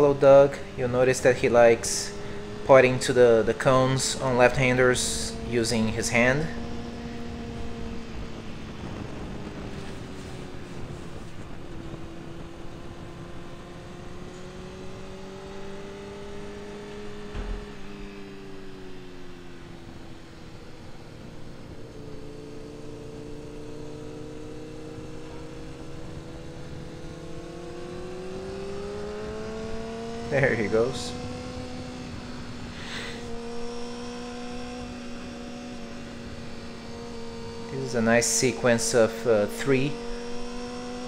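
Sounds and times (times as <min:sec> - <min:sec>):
motorcycle engine: 0:00.0 - 0:41.0.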